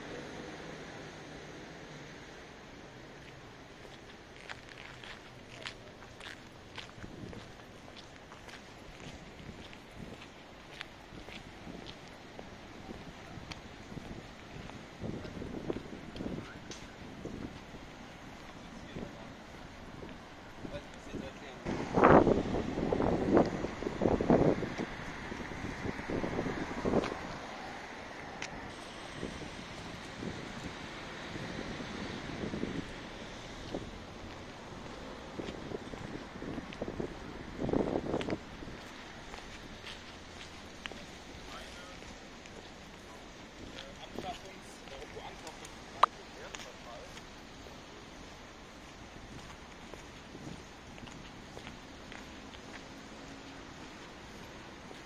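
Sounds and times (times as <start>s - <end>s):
city background hum: 0.0s - 55.0s
footsteps on gravel path: 3.2s - 27.4s, 32.3s - 55.0s
wind buffeting microphone: 6.2s - 41.5s, 47.8s - 52.8s.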